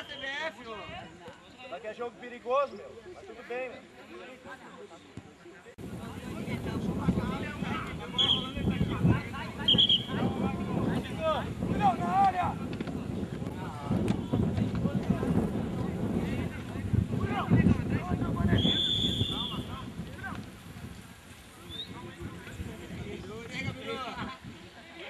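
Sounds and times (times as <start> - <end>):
wind buffeting microphone: 5.8 - 24.8
referee's whistle blast: 8.1 - 8.6, 9.6 - 10.2, 18.5 - 19.7.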